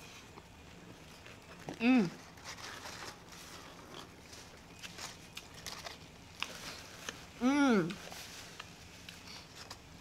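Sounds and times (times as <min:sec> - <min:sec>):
light crinkles: 0:00.1 - 0:10.0.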